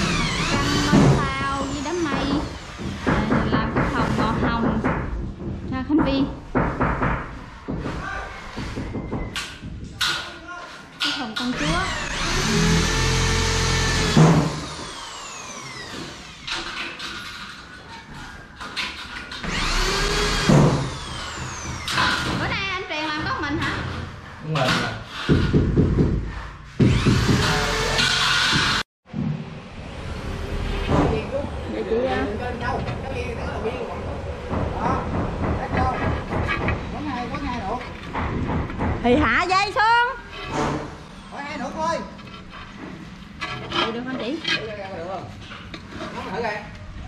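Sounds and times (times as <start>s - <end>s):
electric power tool running: 11.5s - 16.4s, 19.5s - 22.0s.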